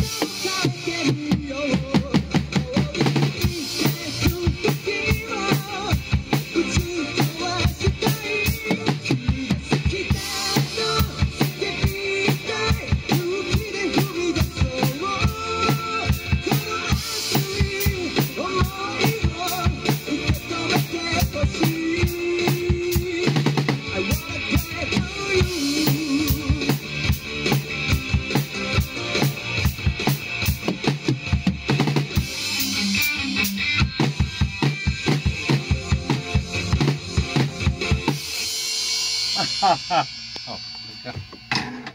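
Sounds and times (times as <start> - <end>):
drum kit playing a steady beat: 0.0 - 41.9.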